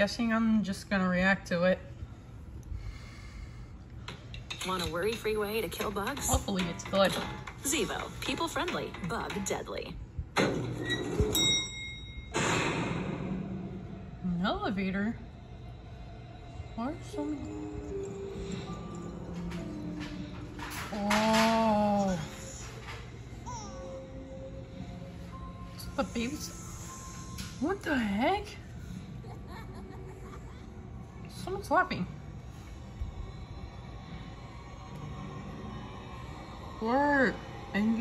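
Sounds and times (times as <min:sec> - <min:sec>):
faint breathing: 0:02.0 - 0:04.4
low steady rumble: 0:11.3 - 0:23.4.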